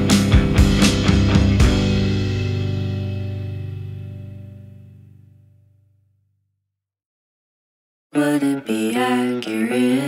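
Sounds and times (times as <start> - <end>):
indie rock final chord with guitar: 0.0 - 5.2.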